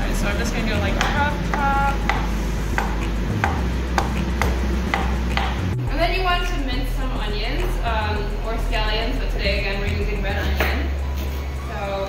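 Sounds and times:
knife chopping on plastic board: 2.1s - 5.6s.

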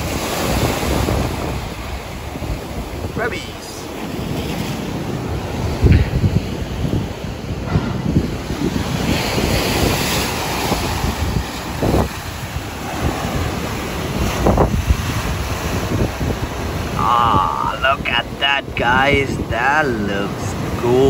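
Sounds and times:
waves breaking on rocks: 0.0s - 21.0s
wind buffeting microphone: 0.0s - 21.0s.

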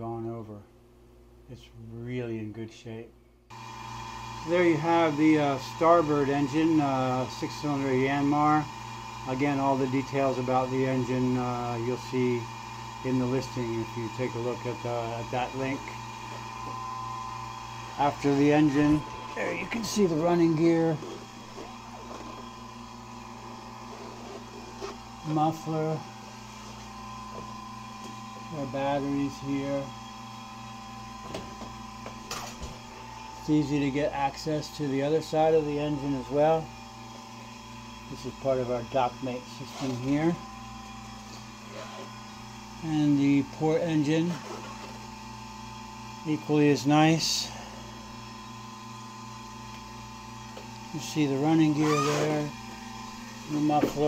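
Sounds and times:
air-conditioning unit humming: 0.0s - 54.0s.

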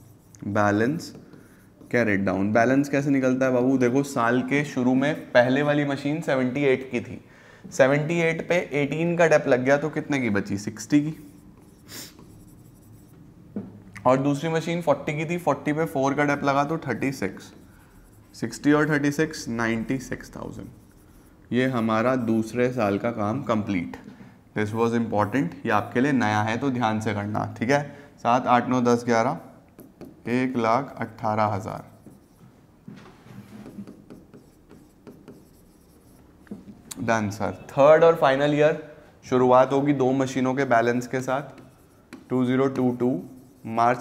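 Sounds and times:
chalk scratching on blackboard: 0.0s - 2.3s, 10.6s - 13.2s, 16.4s - 23.0s, 31.1s - 32.5s, 33.3s - 36.7s, 40.8s - 44.0s.

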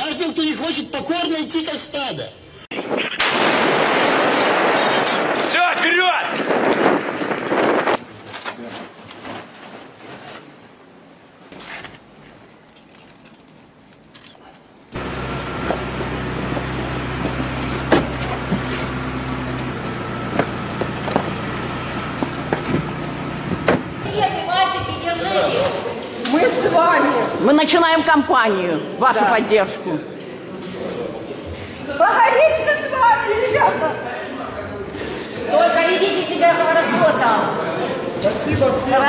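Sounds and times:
loud bang: 2.8s - 6.7s
vehicle and street noise: 10.4s - 24.2s
knocks and bumps on van: 15.0s - 24.1s
low hum: 15.0s - 24.1s.

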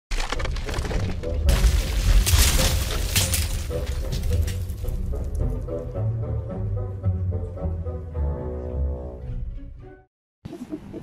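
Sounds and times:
stone slabs cracking and shattering: 0.1s - 5.6s.

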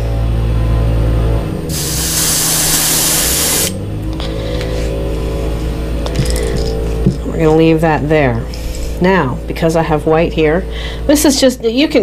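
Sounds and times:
airbrush spraying hiss: 1.7s - 3.8s.

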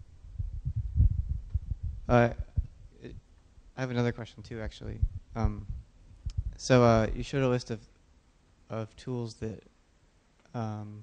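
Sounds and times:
microphone handling thumps: 0.0s - 3.3s, 4.7s - 7.2s.

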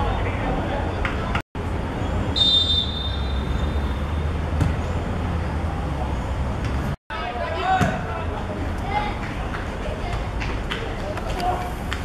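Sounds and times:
referee's whistle blast: 2.4s - 3.6s.

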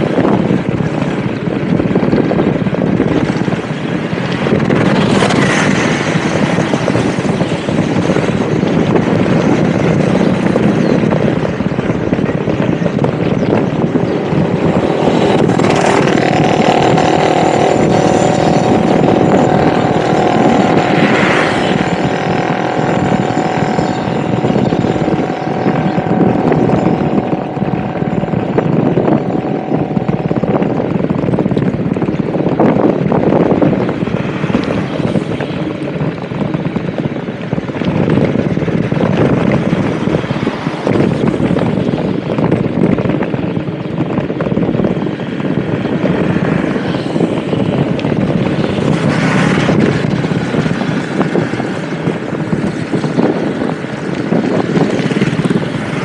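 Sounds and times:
motorbike engine riding: 0.0s - 56.0s
wind and road noise: 0.0s - 56.0s
steady tone: 13.5s - 31.5s.

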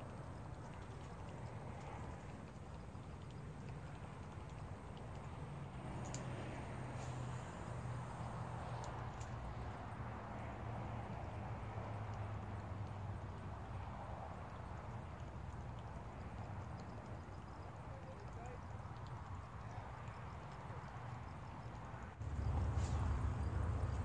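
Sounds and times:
faint clicks: 0.0s - 6.4s, 8.7s - 9.7s
faint hiss: 3.5s - 10.4s, 22.2s - 24.0s.

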